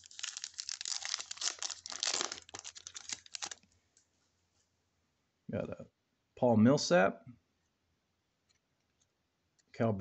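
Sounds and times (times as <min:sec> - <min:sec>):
cards rustling and flicking: 0:00.0 - 0:03.7.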